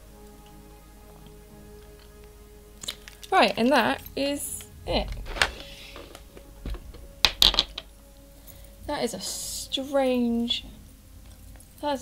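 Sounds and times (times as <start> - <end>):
small hard objects clicking: 2.8 - 3.6, 7.2 - 7.9.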